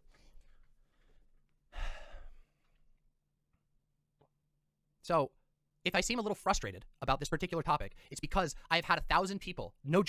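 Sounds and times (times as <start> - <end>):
person sighing: 1.7 - 2.5.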